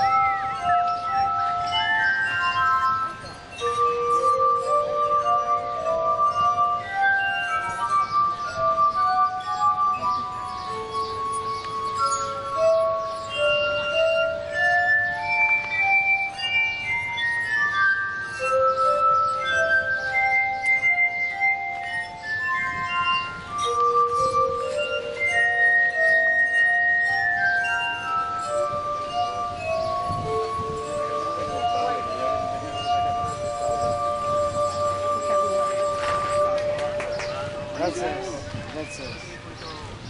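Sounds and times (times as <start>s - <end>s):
glass harp ringing tones: 0.0s - 40.0s.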